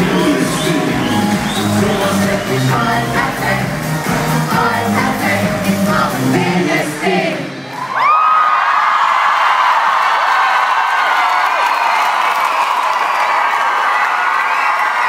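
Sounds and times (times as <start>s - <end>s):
crowd cheering: 0.0s - 3.0s, 7.3s - 15.0s
band music: 0.0s - 7.7s.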